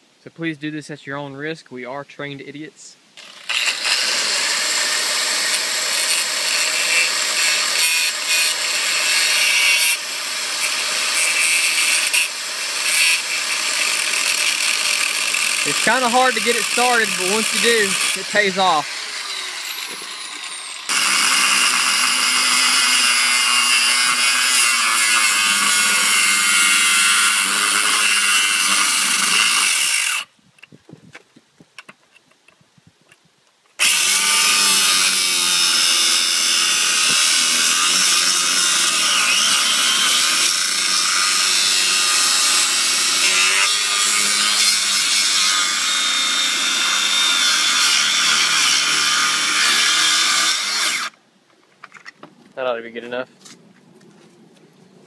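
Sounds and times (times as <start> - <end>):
angle grinder cutting metal: 3.2 - 30.3, 33.8 - 51.1.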